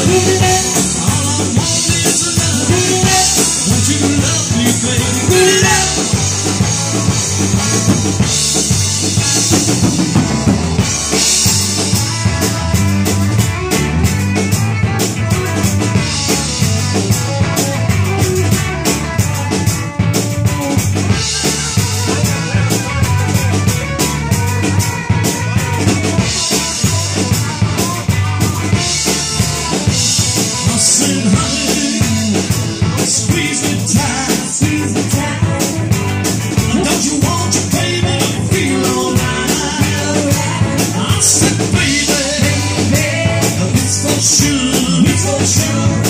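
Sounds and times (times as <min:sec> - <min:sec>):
bass guitar: 0:00.0 - 0:46.0
drum kit beat: 0:00.0 - 0:46.0
electric guitars: 0:00.0 - 0:46.0.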